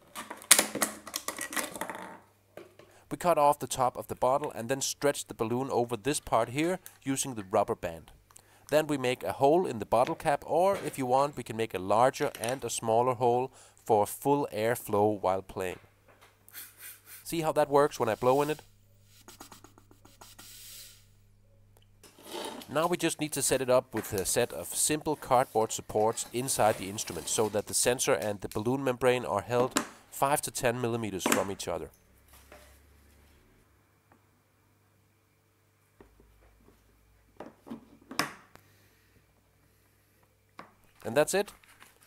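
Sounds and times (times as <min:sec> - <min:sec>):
faint low hum: 0:17.2 - 0:29.8.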